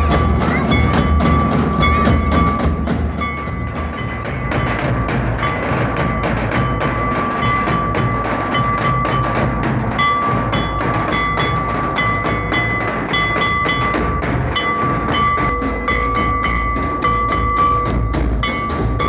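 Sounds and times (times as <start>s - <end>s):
drums beaten with sticks: 0.0s - 19.0s
high steady tone: 0.0s - 19.0s.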